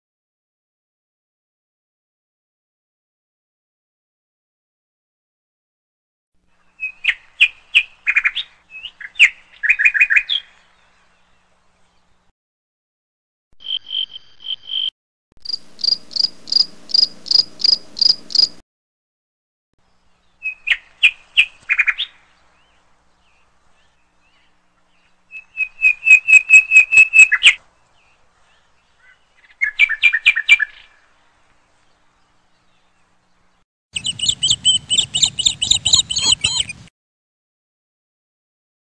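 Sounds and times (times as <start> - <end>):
songbird singing: 6.4 - 12.3, 13.6 - 18.6, 19.8 - 36.9
small bird chirping: 13.6 - 18.6, 19.8 - 31.0, 32.0 - 36.9.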